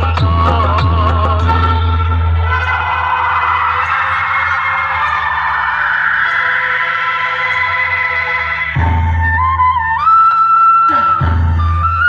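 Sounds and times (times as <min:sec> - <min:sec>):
loud music through loudspeakers: 0:00.0 - 0:12.0.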